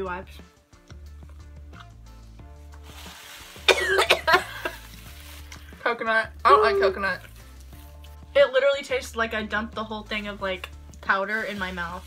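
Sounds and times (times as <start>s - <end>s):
background music: 0.0s - 12.0s
person coughing and gagging: 3.6s - 4.9s.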